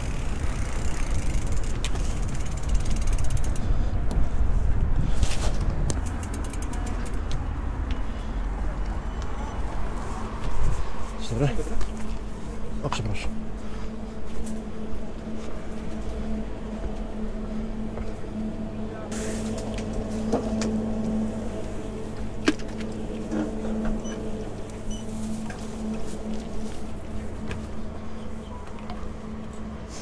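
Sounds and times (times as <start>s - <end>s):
electrical hum of coolers: 0.0s - 30.0s.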